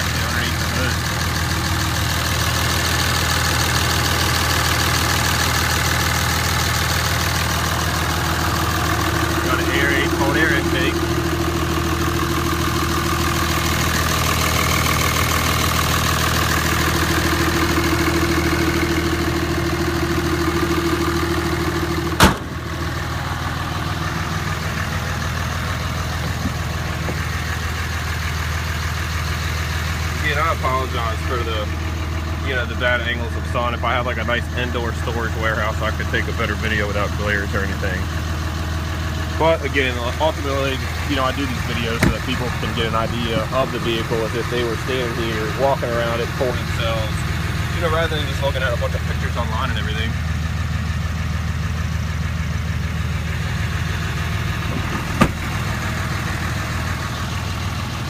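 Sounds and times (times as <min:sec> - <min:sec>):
diesel engine idling: 0:00.0 - 0:58.0
sharp bang: 0:22.2 - 0:22.5.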